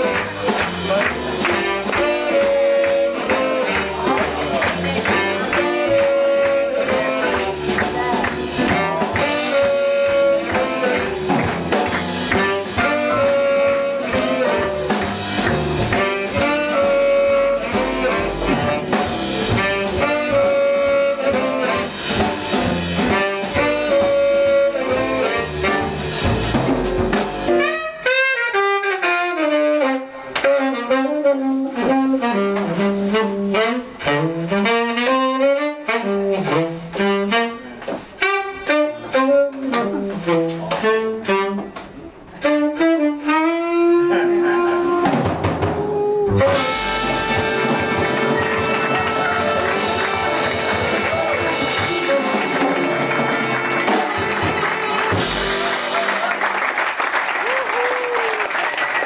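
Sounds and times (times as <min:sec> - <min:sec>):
double bass: 0:00.0 - 0:28.4, 0:29.2 - 0:56.1
saxophones playing riff: 0:00.0 - 0:56.5
drums: 0:00.0 - 0:59.0
piano: 0:00.0 - 0:59.0.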